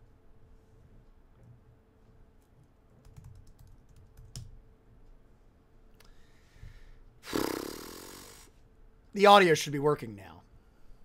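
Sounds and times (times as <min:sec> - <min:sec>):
keyboard typing: 0:03.0 - 0:04.5.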